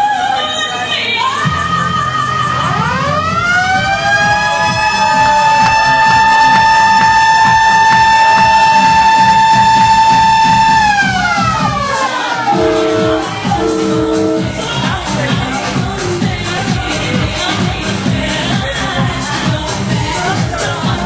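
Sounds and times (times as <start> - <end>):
dance music beat: 3.2 - 21.0
siren-like synth tone: 12.5 - 14.7.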